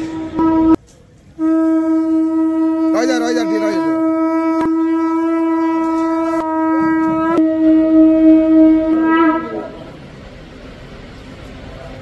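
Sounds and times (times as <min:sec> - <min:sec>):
conch shell blown: 0:00.0 - 0:10.1.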